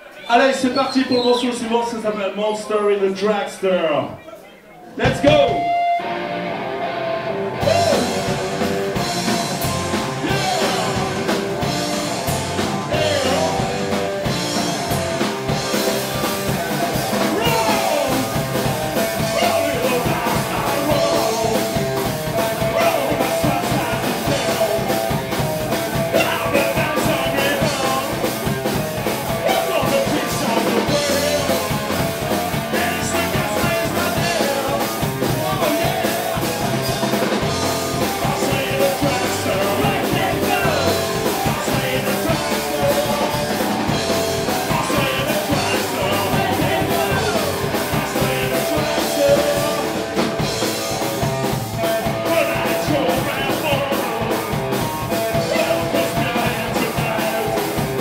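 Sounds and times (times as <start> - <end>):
punk rock band playing: 4.9 - 58.0
man singing into a microphone: 7.6 - 8.6, 10.2 - 11.4, 12.8 - 13.9, 17.2 - 28.3, 29.2 - 31.8, 32.5 - 37.0, 38.0 - 50.2, 51.8 - 58.0.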